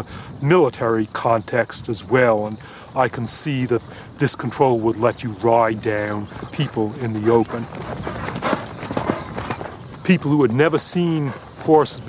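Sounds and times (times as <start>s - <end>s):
horse hoofbeats on grass: 0.6s - 12.0s.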